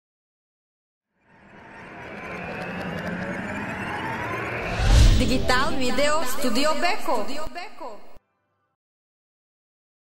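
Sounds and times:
whoosh sound effect: 0:03.8 - 0:06.6.

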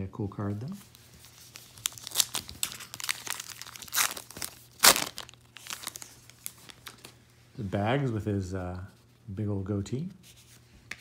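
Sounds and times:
wrapper tearing and crinkling: 0:01.3 - 0:07.1.

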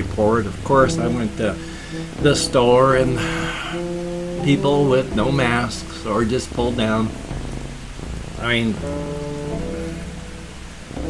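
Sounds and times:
rain hiss: 0:00.0 - 0:11.0
soft background music: 0:00.0 - 0:11.0.

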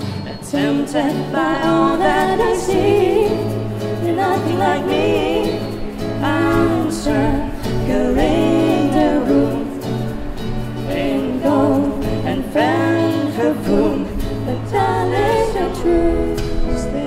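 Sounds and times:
woman singing: 0:00.0 - 0:10.1, 0:10.9 - 0:17.0
acoustic guitar: 0:00.0 - 0:17.0.

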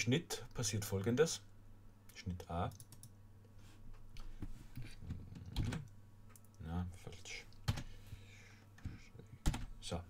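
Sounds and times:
computer mouse clicks: 0:02.7 - 0:03.2.

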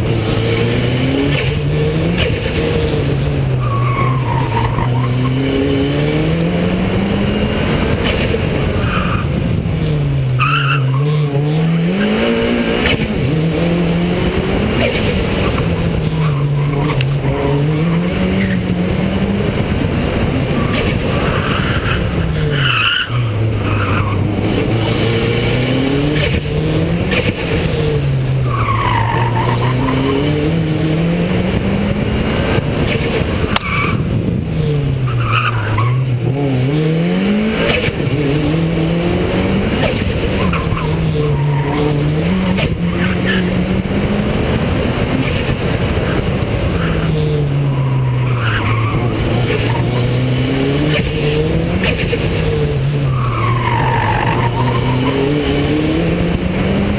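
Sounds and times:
car engine accelerating: 0:00.0 - 0:56.9.

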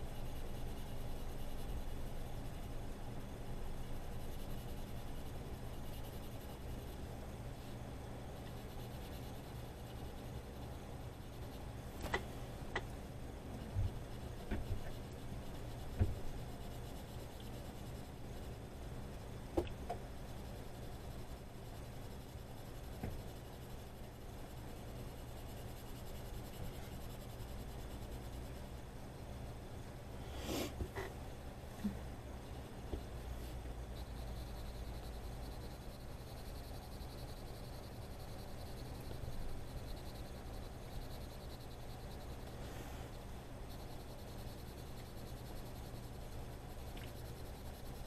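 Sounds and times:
colored pencil scratching on paper: 0:00.0 - 0:11.7, 0:13.6 - 0:18.7, 0:20.2 - 0:28.8.

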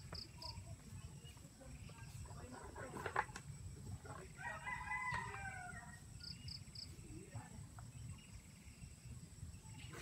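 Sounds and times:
rooster crowing: 0:04.4 - 0:06.1.

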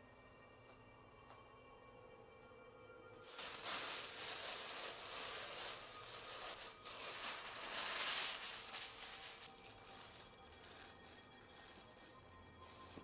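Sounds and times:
paper rustling: 0:03.3 - 0:11.8.

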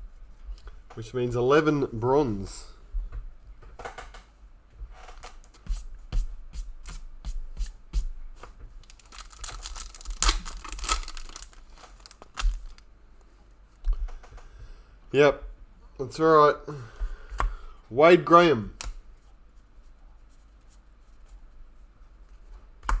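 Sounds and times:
wrapper tearing and crinkling: 0:08.8 - 0:12.9.

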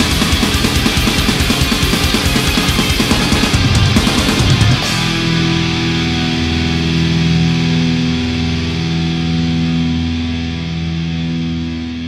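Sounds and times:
distorted electric guitar chords: 0:00.0 - 0:12.0.

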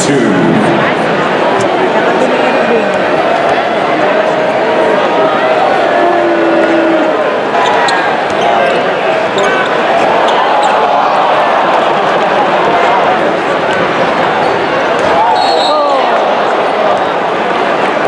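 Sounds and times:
arena crowd chatter: 0:00.0 - 0:18.0
referee's whistle: 0:15.3 - 0:16.0.

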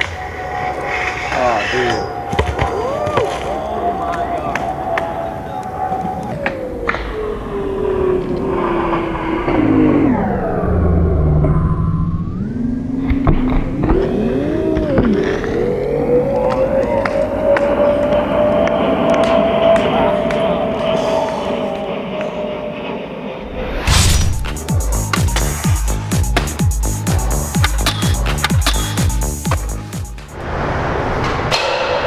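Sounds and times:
distant engine drone: 0:00.0 - 0:32.0.

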